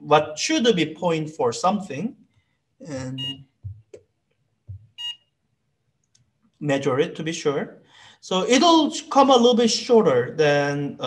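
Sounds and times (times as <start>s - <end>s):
short high electronic beep: 2.9s - 3.8s, 5.0s - 5.2s.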